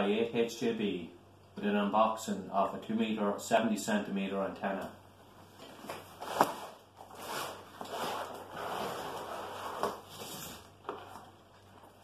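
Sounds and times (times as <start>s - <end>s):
cardboard and plastic rustling: 5.6s - 12.0s.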